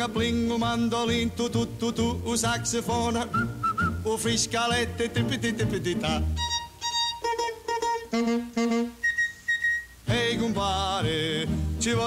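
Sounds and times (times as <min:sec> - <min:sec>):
person singing: 0:00.0 - 0:08.0, 0:10.1 - 0:12.0.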